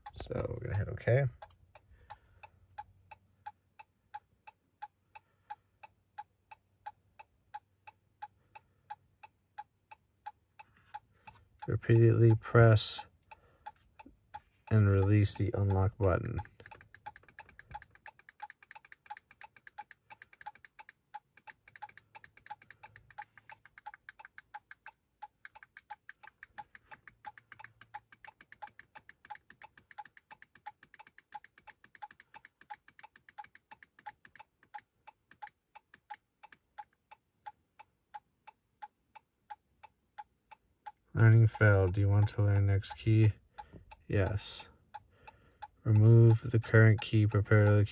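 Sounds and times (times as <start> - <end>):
hazard flasher ticking: 11.2 - 36.2.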